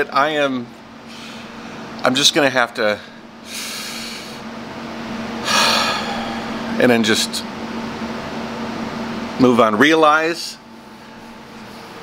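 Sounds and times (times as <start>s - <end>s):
steady low hum: 0.0s - 12.0s
man breathing: 3.0s - 4.5s, 5.4s - 6.8s.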